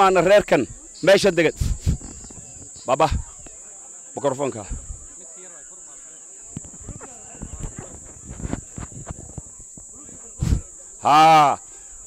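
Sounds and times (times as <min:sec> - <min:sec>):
faint murmurs: 0:00.0 - 0:12.0
high-pitched insect buzz: 0:00.0 - 0:12.0.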